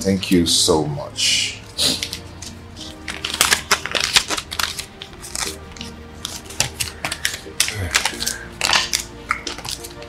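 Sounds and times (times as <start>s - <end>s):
banknotes rustling and snapping: 1.9s - 10.0s.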